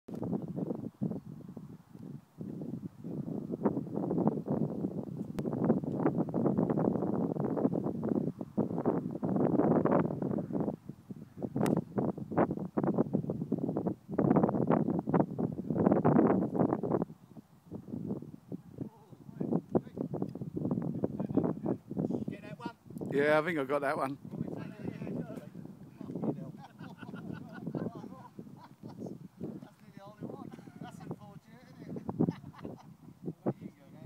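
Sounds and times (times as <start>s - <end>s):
wind buffeting microphone: 0.1s - 34.0s.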